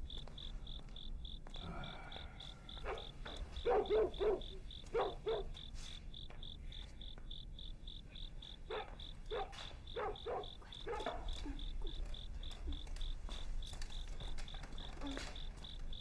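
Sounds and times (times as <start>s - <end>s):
crickets chirping: 0.0s - 16.0s
dog barking: 2.8s - 5.6s, 8.6s - 12.0s.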